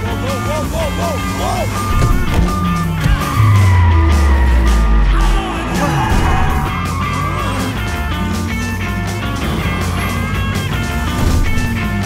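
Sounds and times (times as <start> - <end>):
car engine running hard: 0.0 - 12.0
rock music: 0.0 - 12.0
deep engine note sliding down: 2.2 - 6.8.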